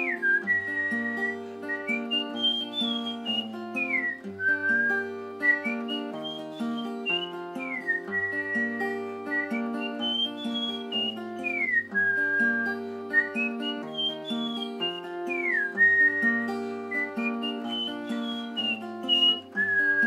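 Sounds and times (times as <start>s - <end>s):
fingerpicked acoustic guitar: 0.0s - 20.0s
whistled melody: 0.0s - 20.0s.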